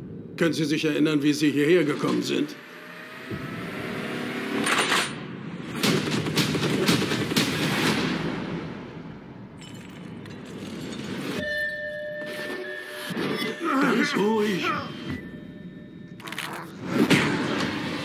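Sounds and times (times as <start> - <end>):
vehicle crash and explosion: 16.8 - 18.0.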